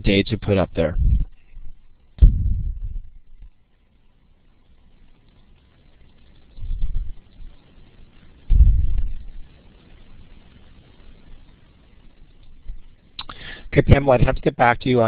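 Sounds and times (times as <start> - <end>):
faint steady hiss: 0.0 - 15.0
muffled bumps on microphone: 0.9 - 3.5, 6.6 - 7.2, 8.5 - 9.4.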